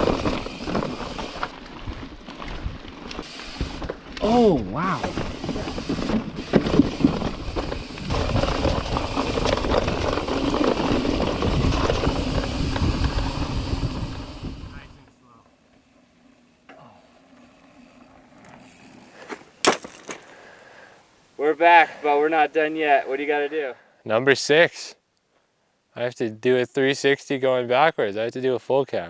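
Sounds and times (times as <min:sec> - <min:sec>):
bike rattling over bumps: 0:00.0 - 0:20.4
mountain bike rolling over rock: 0:00.0 - 0:20.4
wind buffeting on camera: 0:04.6 - 0:15.1.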